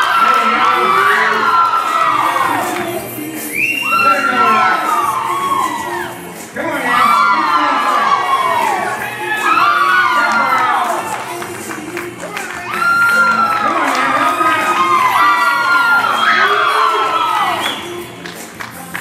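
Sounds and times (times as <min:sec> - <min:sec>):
crowd shouting and cheering: 0:00.0 - 0:19.0.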